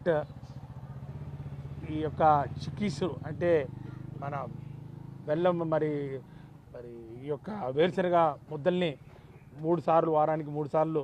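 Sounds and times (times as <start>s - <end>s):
engine humming: 0.0s - 11.0s
man speaking: 1.8s - 4.6s, 5.3s - 9.0s, 9.6s - 11.0s.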